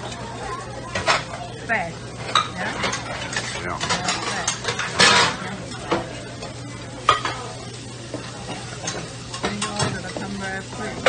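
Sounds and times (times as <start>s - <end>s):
food sizzling on a grill: 0.0s - 11.0s.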